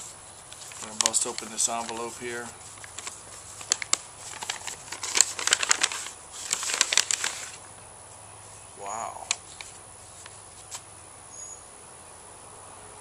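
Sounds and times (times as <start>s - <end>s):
paper envelope tearing and rustling: 0.0s - 7.6s, 9.2s - 10.8s.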